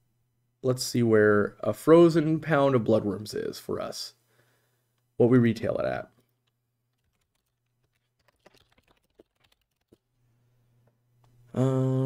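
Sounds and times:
computer keyboard and mouse clicking: 6.1s - 10.0s.

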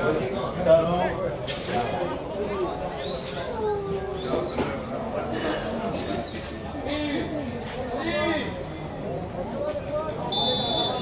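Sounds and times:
low background noise: 0.0s - 11.0s
voices calling out: 2.3s - 11.0s.

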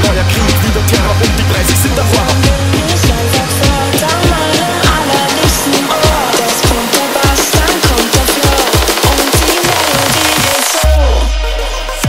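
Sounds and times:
distorted kick drum: 0.0s - 12.0s
synth melody: 0.0s - 12.0s.

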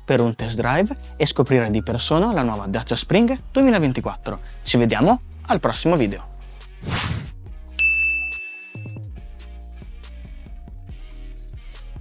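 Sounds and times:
background music: 0.0s - 12.0s
bright chime ding: 7.8s - 9.1s.

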